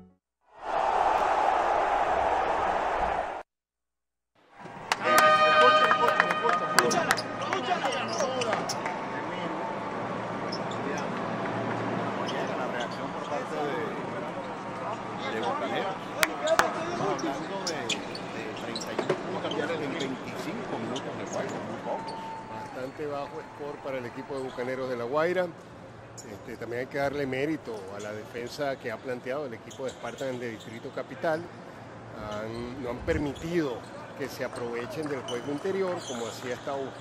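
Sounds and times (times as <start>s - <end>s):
multi-tone horn blast: 5.0s - 7.4s.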